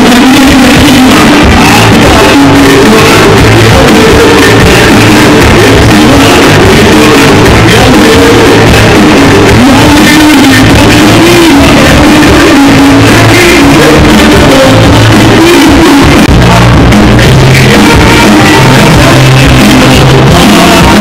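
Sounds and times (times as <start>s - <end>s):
live pop band music: 0.0s - 21.0s
person singing: 0.0s - 21.0s.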